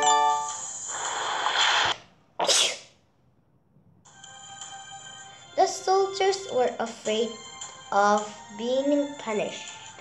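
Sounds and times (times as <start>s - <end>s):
person sneezing: 1.6s - 3.0s.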